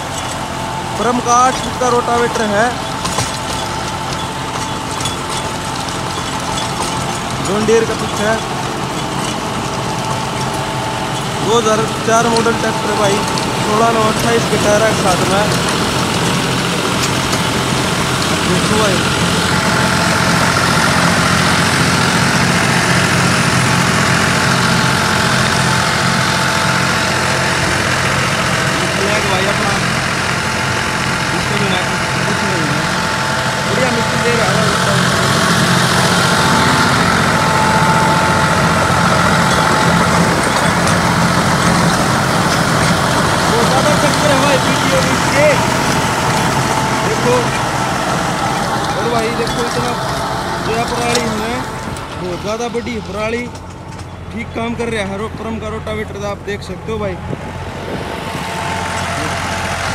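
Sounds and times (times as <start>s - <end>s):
rotavator blades churning soil: 0.0s - 59.9s
tractor diesel engine running: 0.0s - 59.9s.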